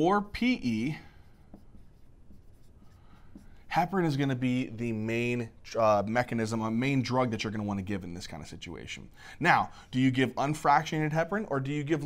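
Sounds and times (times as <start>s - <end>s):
marker writing on whiteboard: 0.0s - 4.2s.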